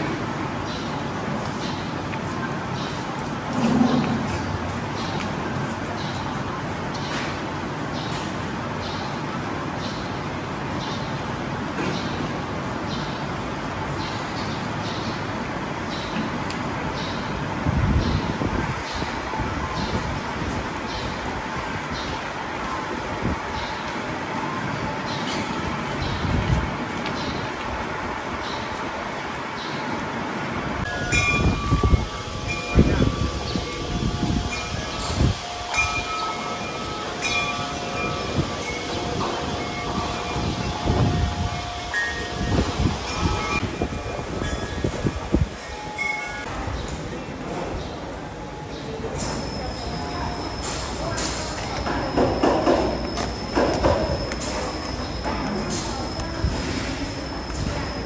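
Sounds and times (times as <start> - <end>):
hum of large hall: 0.0 - 58.0
bell-like chiming tones: 30.9 - 46.5.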